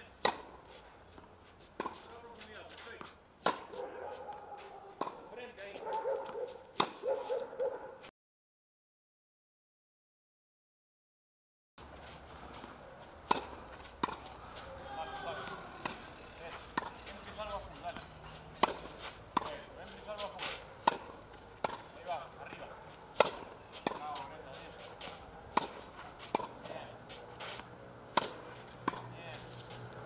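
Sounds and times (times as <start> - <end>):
racket hitting tennis ball: 0.2 - 7.7, 11.8 - 30.0
tennis ball bouncing: 0.2 - 7.7, 11.8 - 30.0.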